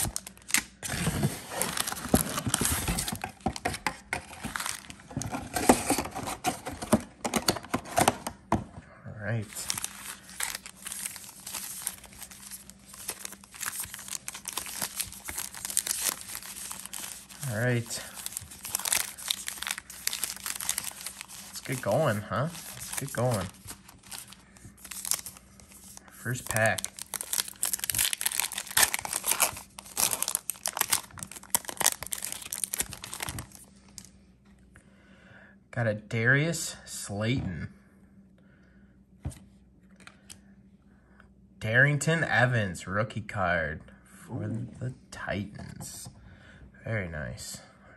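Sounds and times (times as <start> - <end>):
foil wrappers crinkling: 0.0 - 6.0, 9.4 - 34.1.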